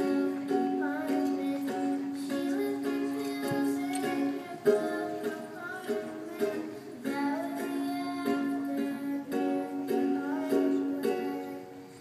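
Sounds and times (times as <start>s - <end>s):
girl singing into microphone: 0.0s - 12.0s
ukulele strumming: 0.0s - 12.0s.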